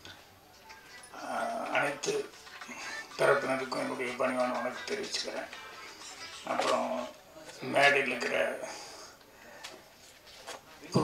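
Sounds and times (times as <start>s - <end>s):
man speaking over pa system: 1.2s - 5.6s, 6.4s - 8.9s.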